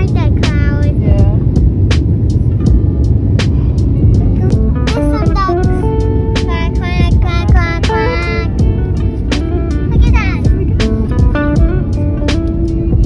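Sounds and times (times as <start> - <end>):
background music with a beat: 0.0 - 13.0
jet airliner cabin rumble: 0.0 - 13.0.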